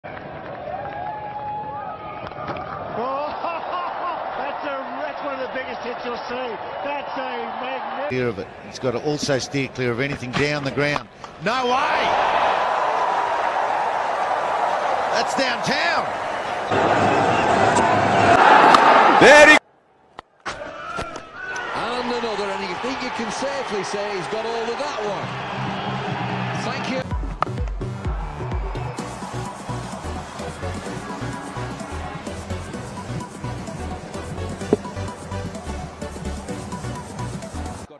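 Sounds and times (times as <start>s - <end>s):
crowd noise: 1.6s - 19.6s, 21.2s - 37.9s
commentator's excited voice: 15.1s - 16.1s, 19.2s - 19.6s
cricket bat striking ball: 34.6s - 35.0s.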